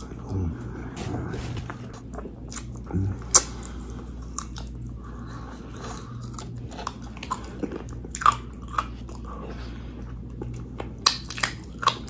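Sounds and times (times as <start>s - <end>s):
chewing fried chicken: 0.0s - 12.0s
crunching breaded crust: 0.8s - 12.0s.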